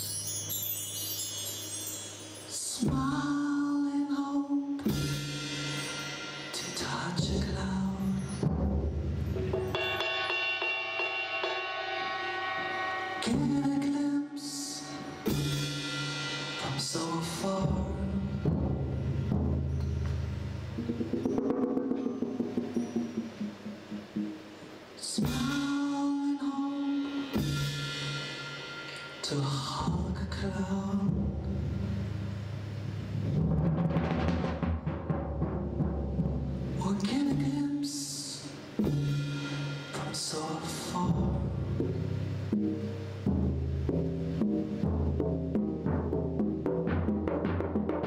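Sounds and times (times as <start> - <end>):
tom-tom strokes with mallets: 0.0 - 3.5, 4.9 - 25.9
live band music: 4.8 - 25.9
cymbal washes: 4.8 - 30.9, 38.1 - 45.0
quick pitched drum strokes: 8.4 - 25.8, 27.1 - 37.7.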